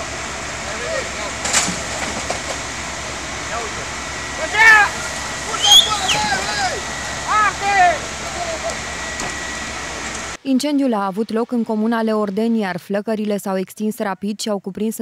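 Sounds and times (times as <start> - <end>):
fire hoses rushing: 0.0 - 10.4
people shouting: 4.4 - 8.8.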